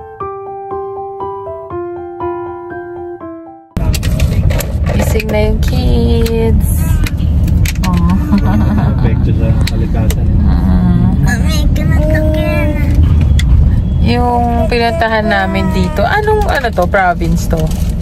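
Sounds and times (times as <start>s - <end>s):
car engine rumble and road noise: 3.8s - 18.0s
people talking: 4.9s - 7.0s, 7.8s - 13.0s, 14.0s - 17.8s.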